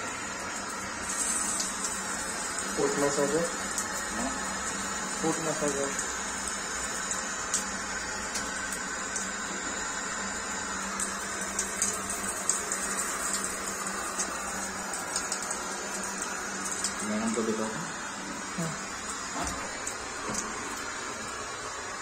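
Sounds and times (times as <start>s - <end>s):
running water rushing: 11.0s - 22.0s.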